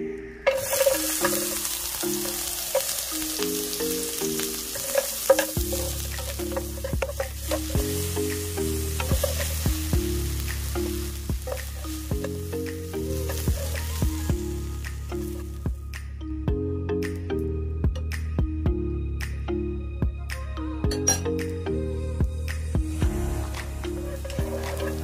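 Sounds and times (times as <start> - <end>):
background music: 0.0 - 25.0
tongs clicking and scraping: 0.4 - 15.6, 23.8 - 25.0
onion sizzling in hot oil: 0.5 - 15.6, 23.0 - 25.0.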